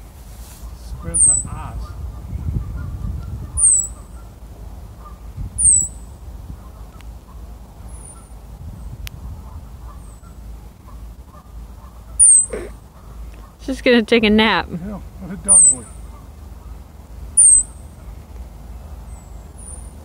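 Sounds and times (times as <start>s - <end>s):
ground squirrel alarm chirps: 1.0s - 2.0s, 3.2s - 4.4s, 5.0s - 8.4s, 9.8s - 13.7s, 15.4s - 18.1s, 19.0s - 20.0s.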